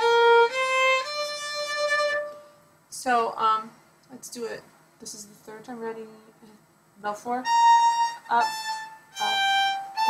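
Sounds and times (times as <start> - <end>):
solo violin bowed notes: 0.0 - 2.6, 7.4 - 10.0.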